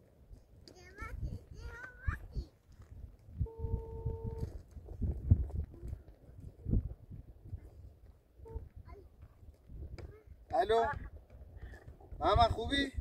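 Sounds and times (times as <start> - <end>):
phone ringback beep: 3.4 - 4.5.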